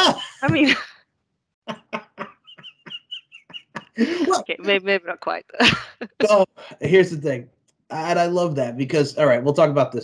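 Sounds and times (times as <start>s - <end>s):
breathy squeaky laughter: 1.7s - 4.4s.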